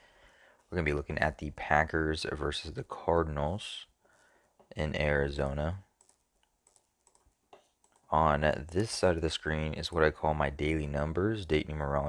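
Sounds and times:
computer keys clicking: 5.4 - 8.1.

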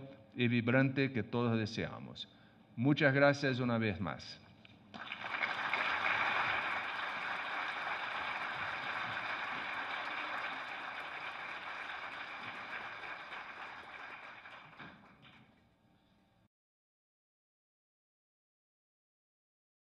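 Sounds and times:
audience applauding: 4.9 - 15.5.

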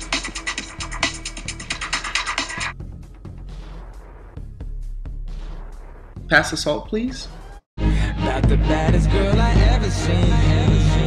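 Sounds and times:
rapid ratchet-like clicking: 0.0 - 2.7
music: 0.0 - 11.0.

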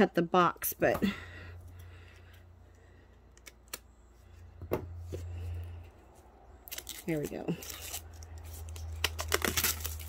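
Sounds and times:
cellophane crackling: 6.6 - 10.0.

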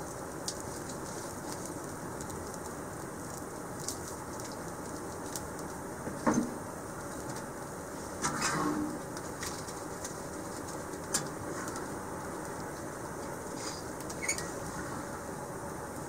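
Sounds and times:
fire crackling in wood stove: 0.0 - 16.0
stove door clanking and scraping: 8.2 - 9.0.

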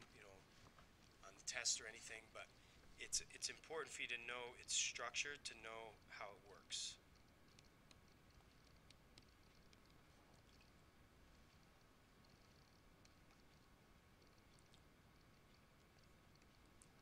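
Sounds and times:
faint room hiss: 0.0 - 17.0.

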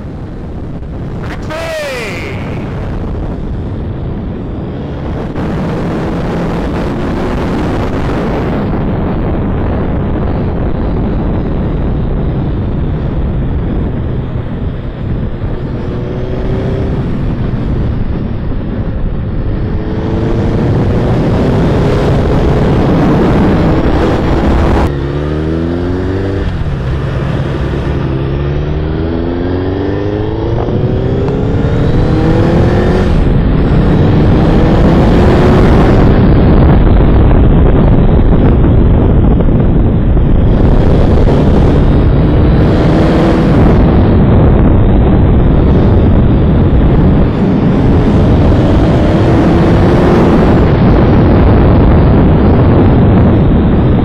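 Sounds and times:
wind rushing on microphone: 0.0 - 54.0
motorcycle engine revving through gears: 13.7 - 18.4, 19.2 - 36.2, 40.4 - 51.4.

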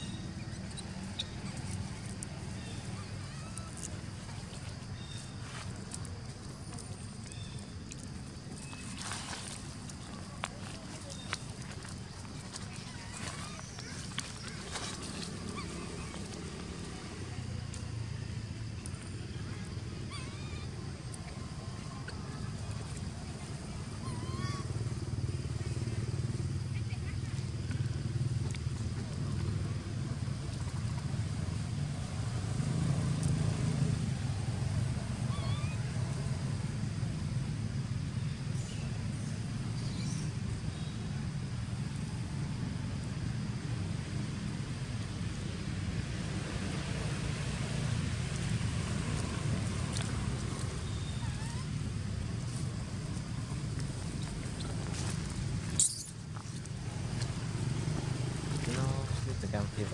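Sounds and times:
distant motor traffic rumble: 0.0 - 59.9.

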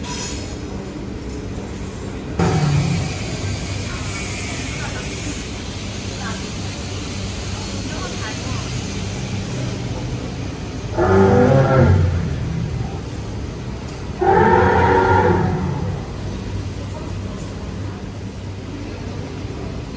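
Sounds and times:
steady low hum: 0.6 - 19.9
recorded mammoth roars: 2.4 - 3.2, 10.8 - 13.0, 14.1 - 16.3.

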